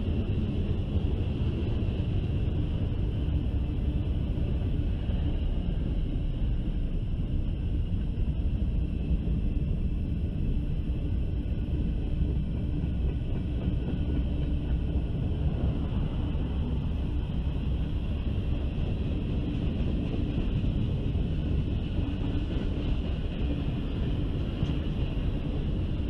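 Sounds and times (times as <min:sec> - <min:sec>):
freight train wheels rumbling: 0:00.0 - 0:26.0.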